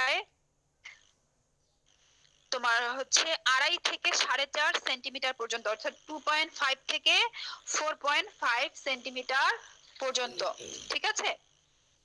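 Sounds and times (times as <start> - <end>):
person speaking: 2.6 - 11.4.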